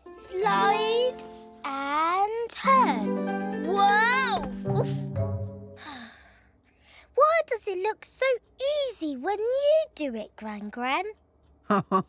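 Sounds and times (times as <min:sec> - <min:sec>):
background music with held notes: 0:00.0 - 0:05.9
child's breathy sigh: 0:05.8 - 0:06.5.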